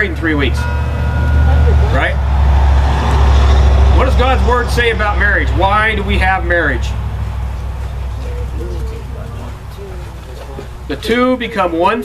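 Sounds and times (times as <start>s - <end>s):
vehicle passing: 0.0s - 12.0s.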